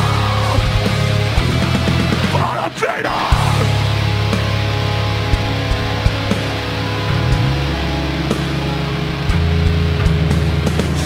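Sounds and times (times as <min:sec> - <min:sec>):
distorted electric guitars: 0:00.0 - 0:11.0
bass low sustained notes: 0:03.5 - 0:10.9
drum hits: 0:07.1 - 0:07.9.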